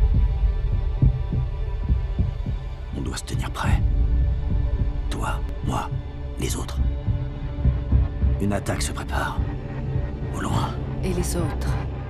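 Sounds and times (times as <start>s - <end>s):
deep bass drone: 0.0s - 12.0s
soft low pulses: 0.0s - 12.0s.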